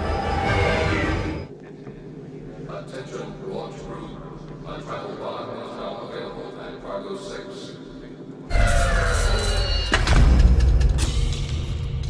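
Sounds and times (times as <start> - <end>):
background music: 0.0 - 1.5.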